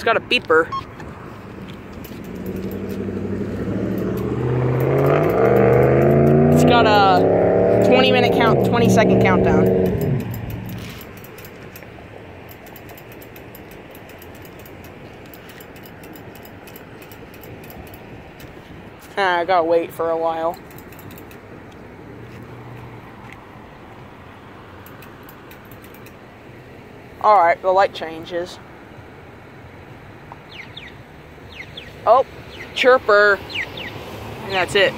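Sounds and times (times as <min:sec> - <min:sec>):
pedestrian signal ticking: 0:00.0 - 0:01.1, 0:01.8 - 0:18.6, 0:24.8 - 0:26.3
vehicle passing: 0:00.0 - 0:12.4, 0:13.0 - 0:27.2, 0:30.5 - 0:34.9
road traffic: 0:00.0 - 0:34.9
pedestrian signal chirps: 0:00.6 - 0:01.0.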